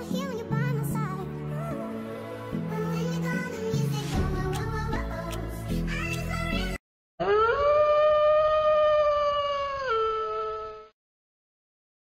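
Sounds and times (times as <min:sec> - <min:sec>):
wolf howling: 0:07.2 - 0:10.9.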